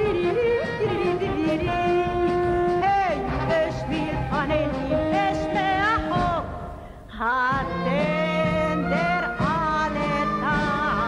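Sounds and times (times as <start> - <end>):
instrumental accompaniment: 0.0 - 11.0
woman singing: 0.0 - 11.0.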